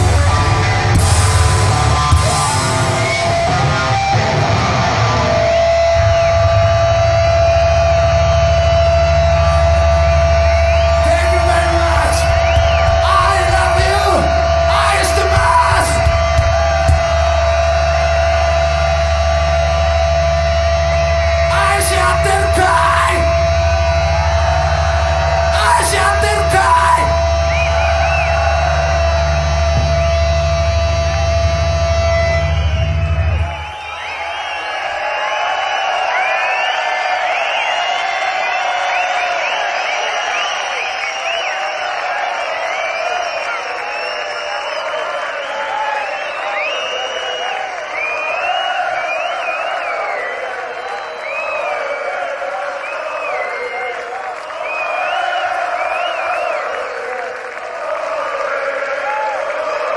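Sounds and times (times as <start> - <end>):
droning electric guitar and bass: 0.0 - 33.7
crowd cheering and whistling: 0.0 - 59.9.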